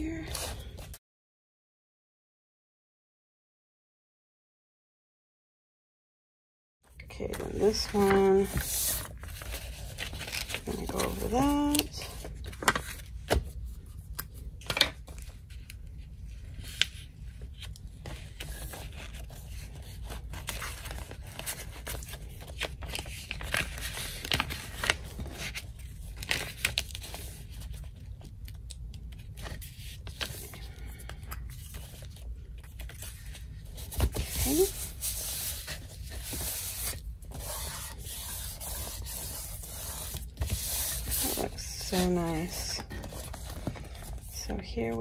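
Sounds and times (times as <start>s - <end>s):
paper rustling and rubbing: 7.3s - 14.0s, 14.7s - 28.4s, 29.0s - 45.0s.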